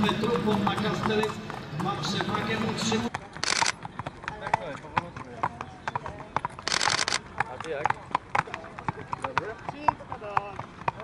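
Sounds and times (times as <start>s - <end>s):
horse hooves clopping on pavement: 0.0s - 11.0s.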